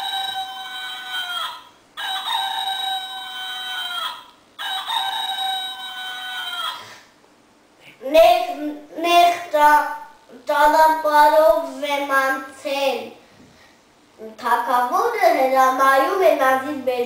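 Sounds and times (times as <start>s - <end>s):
rooster crowing: 0.0s - 7.0s.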